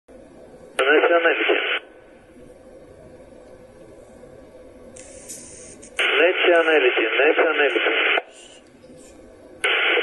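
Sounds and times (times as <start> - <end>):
low steady radio hiss: 0.1 - 10.0
voice over marine radio: 0.8 - 1.8, 6.0 - 8.3.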